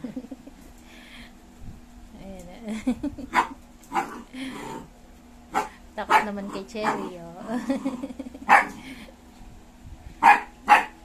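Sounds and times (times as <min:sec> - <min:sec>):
dog barking: 0:03.3 - 0:04.2, 0:05.5 - 0:07.1, 0:08.5 - 0:08.8, 0:10.2 - 0:11.0.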